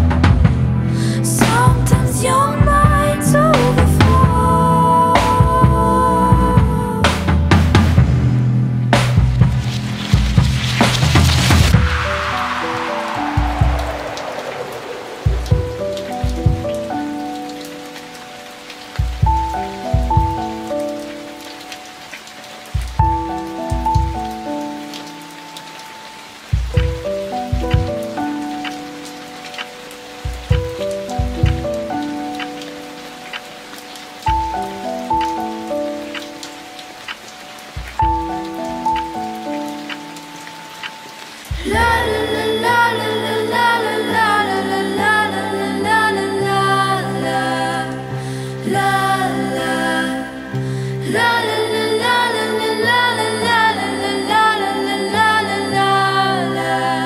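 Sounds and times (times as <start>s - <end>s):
deep bass thumps: 0.0s - 0.8s, 5.4s - 12.2s, 15.3s - 16.9s, 19.0s - 20.5s, 26.6s - 28.1s, 30.3s - 31.9s
falling whooshing sweep: 9.6s - 16.9s.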